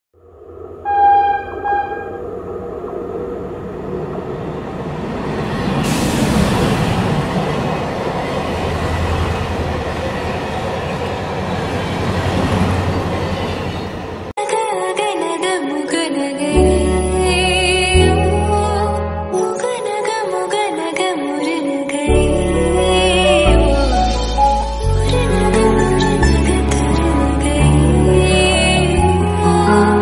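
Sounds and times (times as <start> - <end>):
train rumble and rush: 0.2 - 14.4
train horn: 0.8 - 2.2.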